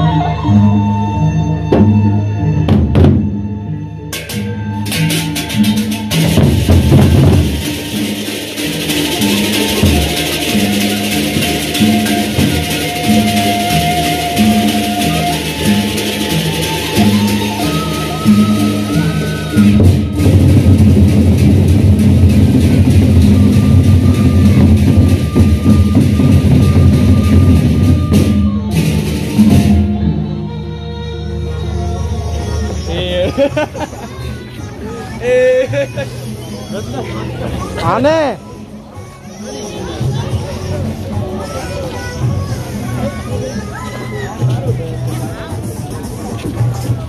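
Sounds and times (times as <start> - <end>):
gongs: 0.0 - 30.6
cymbals: 0.0 - 30.7
barrel drum strokes: 2.7 - 30.3.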